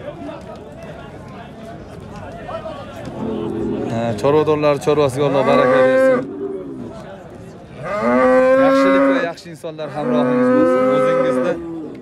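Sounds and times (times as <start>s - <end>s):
bull mooing loudly: 5.3s - 6.9s, 7.8s - 9.3s, 9.9s - 12.0s.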